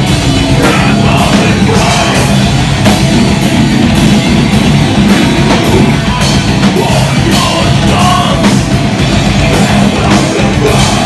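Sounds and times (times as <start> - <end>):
distorted guitars: 0.0 - 11.0
drums with cymbal and snare hits: 0.0 - 11.0
vocalist on microphone: 0.5 - 2.5, 5.6 - 8.7, 9.5 - 11.0.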